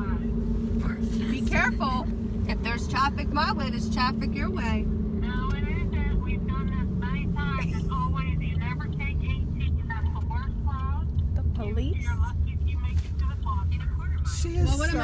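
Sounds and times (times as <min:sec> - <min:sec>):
car road and engine rumble: 0:00.0 - 0:15.0
voices talking: 0:00.0 - 0:15.0.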